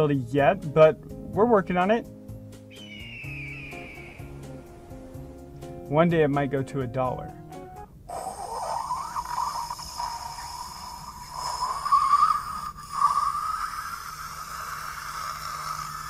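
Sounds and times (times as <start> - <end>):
rising hissing whoosh: 2.7 - 5.8.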